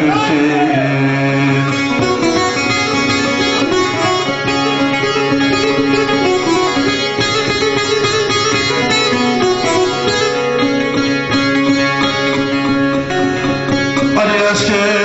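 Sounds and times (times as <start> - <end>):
person singing: 0.0 - 2.3
plucked long-necked lute: 0.8 - 15.0.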